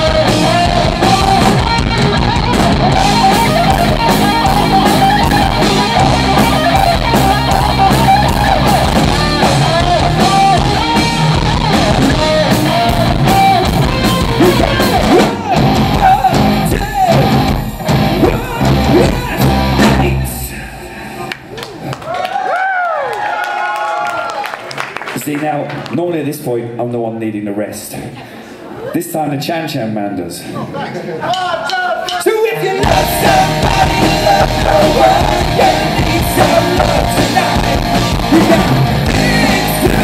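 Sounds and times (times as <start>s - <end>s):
lead guitar bending notes: 0.0s - 20.5s, 32.7s - 40.0s
live rock band playing: 0.0s - 20.7s, 32.0s - 40.0s.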